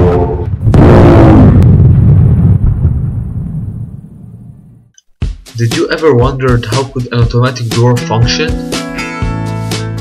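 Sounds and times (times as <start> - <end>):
explosion blast with low rumble: 0.0 - 4.9.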